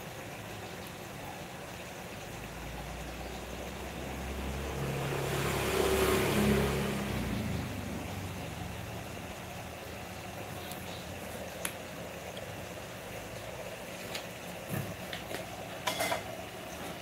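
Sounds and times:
vehicle passing by: 2.4s - 11.3s.

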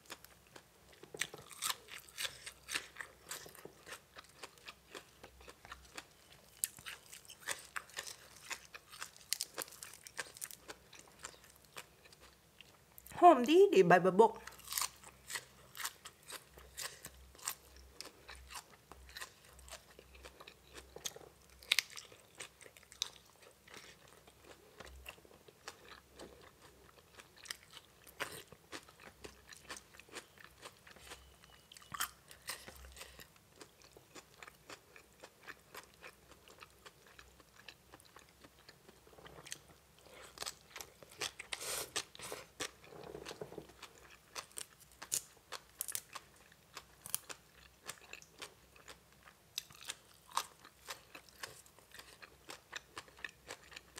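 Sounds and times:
person chewing crunchy food: 0.0s - 13.1s, 14.4s - 53.9s.

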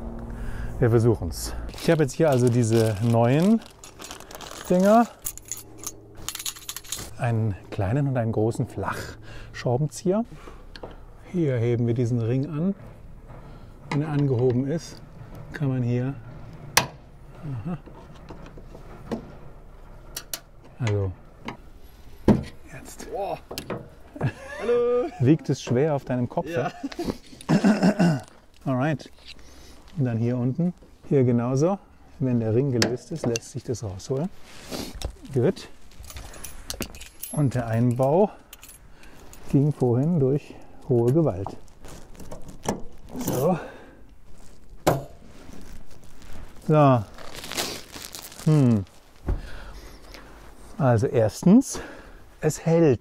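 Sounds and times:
faint handling noise: 0.9s - 9.6s, 28.2s - 50.8s.

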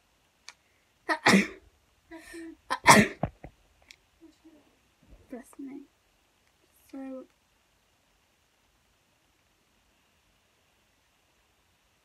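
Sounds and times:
person sneezing: 1.1s - 1.6s, 2.7s - 3.3s.

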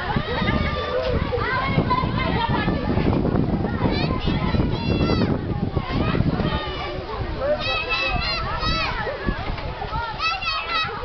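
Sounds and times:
children shouting and chattering: 0.0s - 11.0s.

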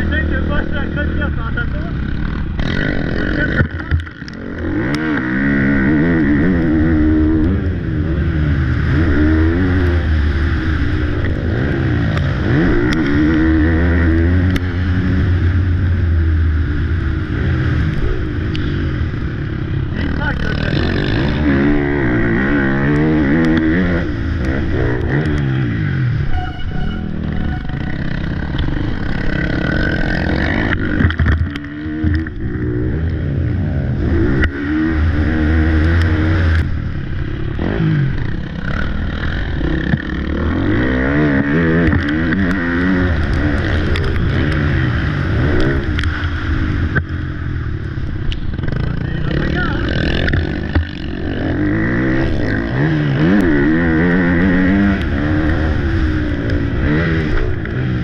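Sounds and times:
motocross bike engine revving: 0.0s - 58.0s.

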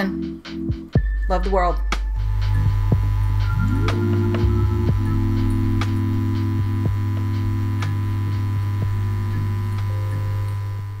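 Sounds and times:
held synth tones: 1.0s - 10.6s
low droning hum: 1.0s - 11.0s.

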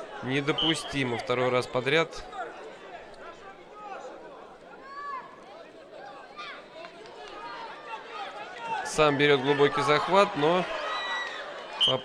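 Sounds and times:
spectators shouting: 7.3s - 12.0s.

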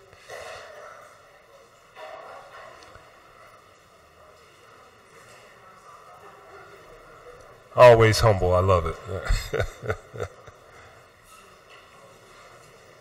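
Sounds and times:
faint murmur of people: 0.0s - 13.0s.

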